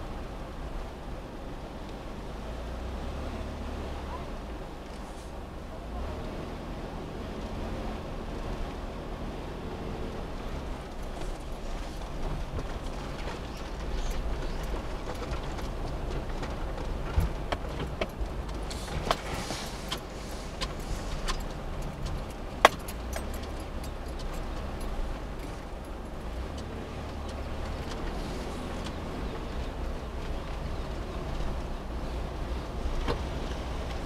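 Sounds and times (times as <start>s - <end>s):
van engine and tyre rumble: 0.0s - 34.0s.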